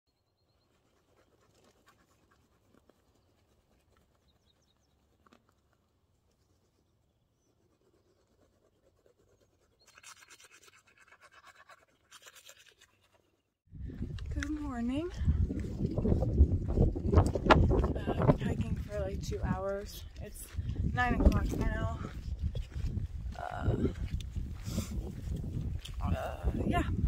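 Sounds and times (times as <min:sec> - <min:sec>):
toothbrush scrubbing teeth: 0:08.2 - 0:13.2.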